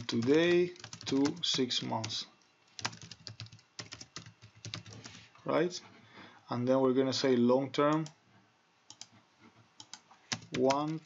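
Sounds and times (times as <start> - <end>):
computer mouse clicks: 8.9 - 9.1, 9.8 - 10.8.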